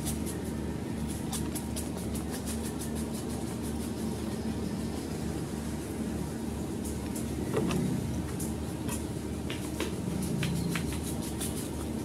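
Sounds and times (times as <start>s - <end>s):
low rumbling hum: 0.0s - 12.0s
fast thin high ticks: 8.3s - 12.0s.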